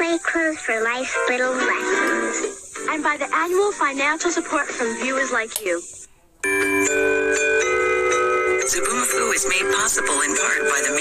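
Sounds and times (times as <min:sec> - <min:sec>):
bell-like chiming jingle: 0:06.4 - 0:11.0.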